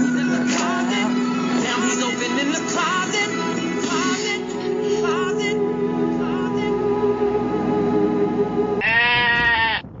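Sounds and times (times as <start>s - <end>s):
sheep-like bleat: 8.8s - 9.9s.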